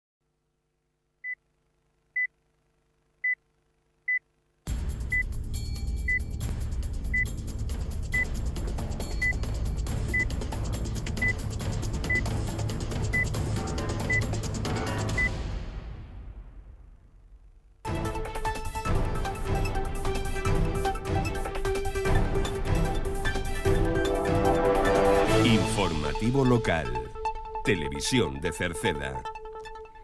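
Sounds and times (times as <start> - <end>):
music with heavy bass: 4.7 - 15.3, 17.9 - 26.4
countdown clock beeps: 9.1 - 9.4.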